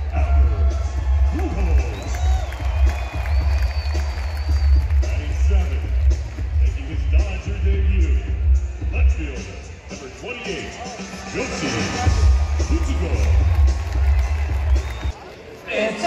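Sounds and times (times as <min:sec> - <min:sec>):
music with heavy bass over speakers: 0:00.0 - 0:15.1
crowd noise: 0:00.0 - 0:16.0.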